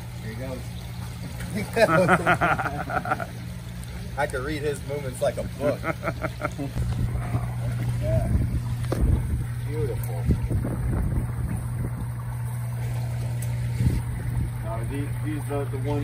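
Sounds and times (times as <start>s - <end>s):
water churning and splashing: 0.0s - 16.0s
water pump humming: 0.0s - 16.0s.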